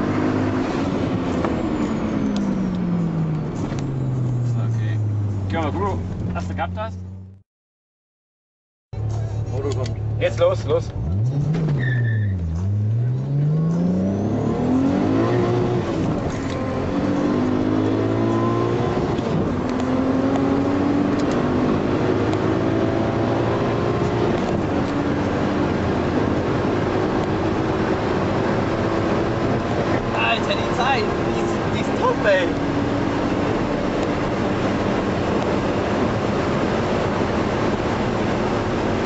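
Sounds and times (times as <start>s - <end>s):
car engine accelerating: 0.0s - 7.4s, 9.0s - 39.0s.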